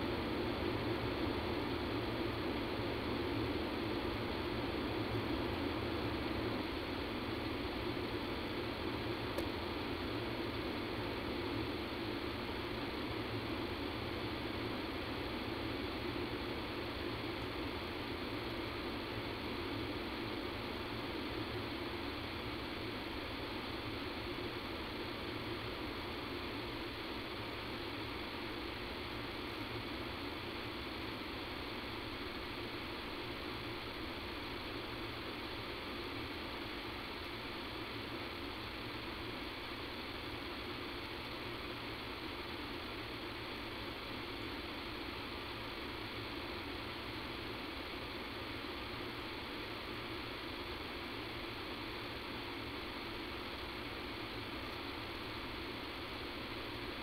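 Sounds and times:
telephone line hiss and hum: 0.0s - 57.0s.

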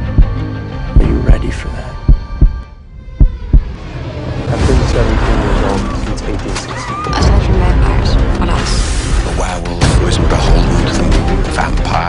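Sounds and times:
heartbeat thumps: 0.0s - 3.8s.

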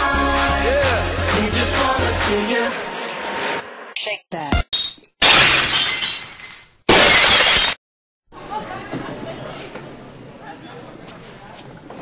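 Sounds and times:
loud shattering crashes: 5.2s - 7.8s.

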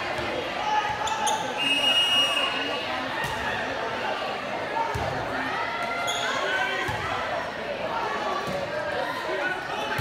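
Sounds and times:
crowd chatter: 0.0s - 10.0s
referee's whistle blown: 1.5s - 2.7s.

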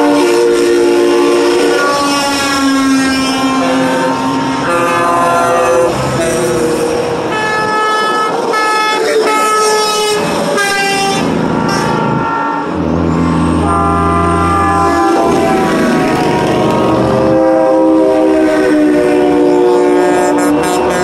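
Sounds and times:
diesel truck engine drone: 0.0s - 21.0s
truck horns honking: 0.0s - 21.0s.

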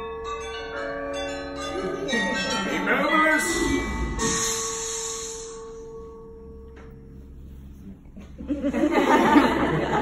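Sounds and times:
bell ringing: 0.0s - 7.3s
high hiss: 4.2s - 5.8s.

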